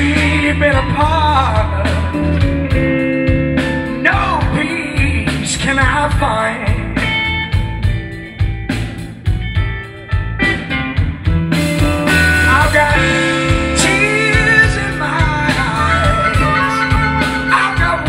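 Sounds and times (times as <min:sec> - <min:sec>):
person singing: 0:00.0 - 0:02.6, 0:03.9 - 0:07.4, 0:12.2 - 0:18.0
drums: 0:00.0 - 0:18.0
electric bass: 0:00.0 - 0:18.0
electric guitar: 0:00.0 - 0:18.0.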